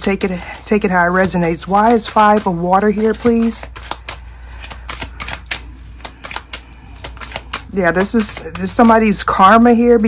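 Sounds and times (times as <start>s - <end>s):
cards being shuffled: 0.1s - 9.3s.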